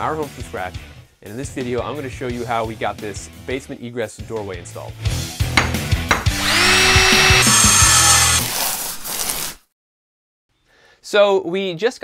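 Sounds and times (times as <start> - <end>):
power drill whine: 6.4 - 9.6.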